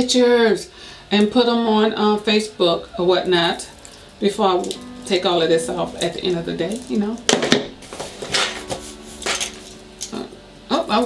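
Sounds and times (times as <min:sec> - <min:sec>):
handbag rustling: 0:03.0 - 0:10.3.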